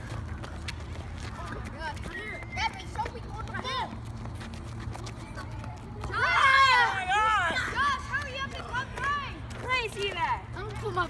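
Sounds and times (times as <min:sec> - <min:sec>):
running footsteps on asphalt: 0:00.0 - 0:11.0
young voices shouting: 0:06.1 - 0:10.0.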